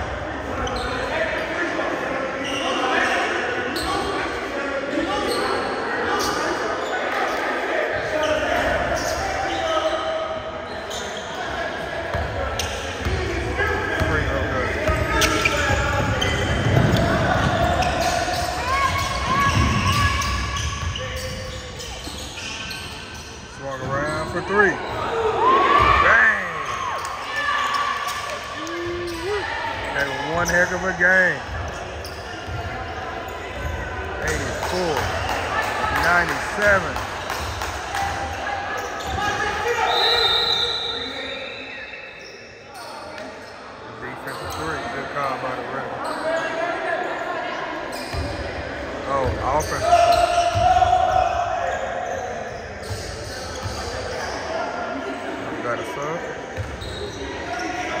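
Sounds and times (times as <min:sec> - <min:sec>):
players calling out: 0:00.1 - 0:41.4.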